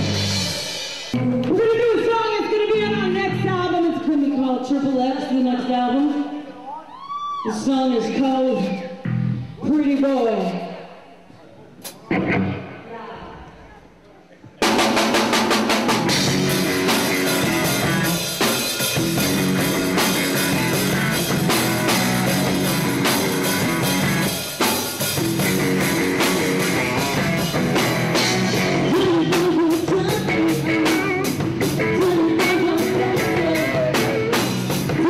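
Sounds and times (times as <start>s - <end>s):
live rock band playing: 0.0s - 3.8s, 14.6s - 35.0s.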